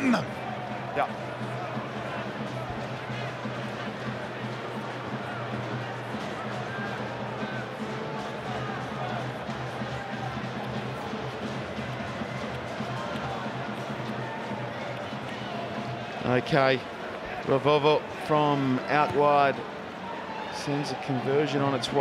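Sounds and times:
music playing: 0.0 - 22.0
stadium crowd noise: 0.0 - 22.0.

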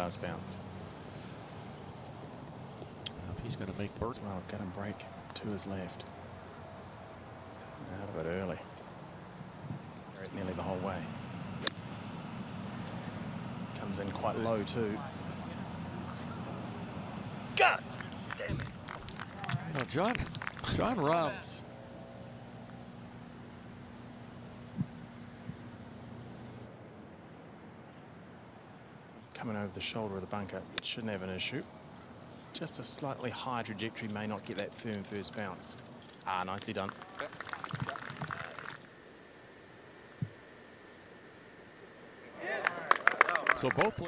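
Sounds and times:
faint steady hum: 0.0 - 44.0.

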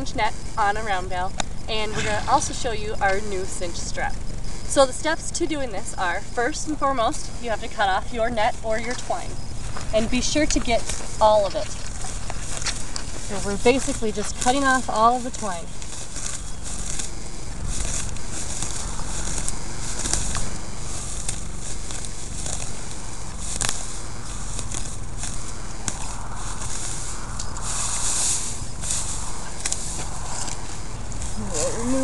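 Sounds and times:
low rumble: 0.2 - 5.2, 5.9 - 32.0
netting rustling over hay: 0.6 - 4.9, 5.7 - 32.0.

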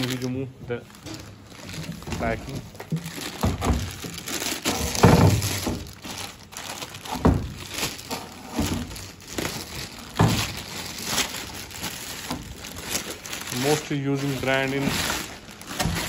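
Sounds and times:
plastic bag crinkling: 0.0 - 16.0.

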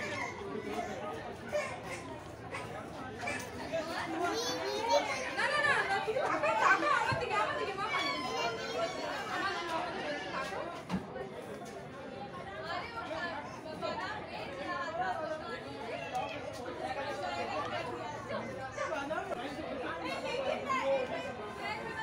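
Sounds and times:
people chattering: 0.0 - 22.0.

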